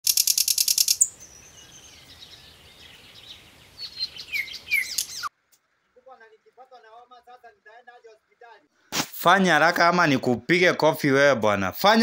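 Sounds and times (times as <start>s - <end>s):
birds chirping: 0.1s - 6.0s.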